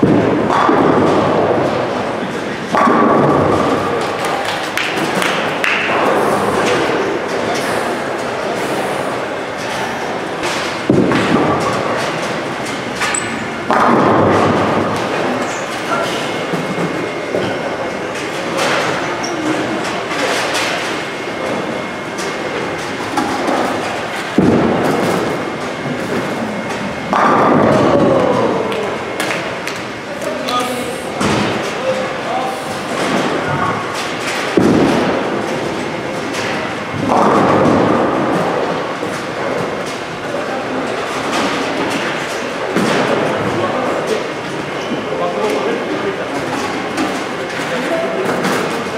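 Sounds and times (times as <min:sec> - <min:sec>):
bowling balls rolling: 0:00.0 - 0:30.2, 0:32.8 - 0:48.9.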